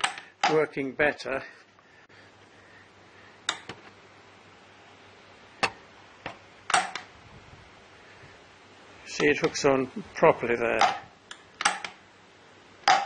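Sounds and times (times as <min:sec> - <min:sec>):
metal-on-metal clicks: 0:00.0 - 0:00.6, 0:06.7 - 0:07.1, 0:10.8 - 0:12.0.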